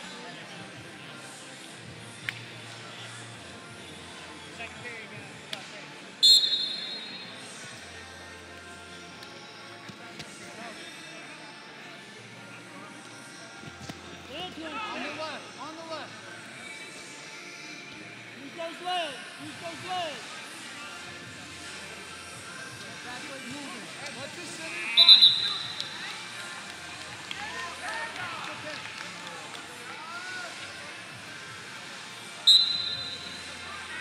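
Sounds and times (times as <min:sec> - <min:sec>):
referee's whistle: 0:06.2 - 0:07.3, 0:25.0 - 0:26.0, 0:32.4 - 0:33.5.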